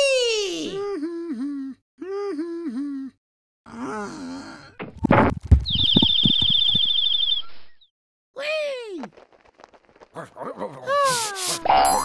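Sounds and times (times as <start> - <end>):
cartoon character whimpering: 10.6 - 12.0.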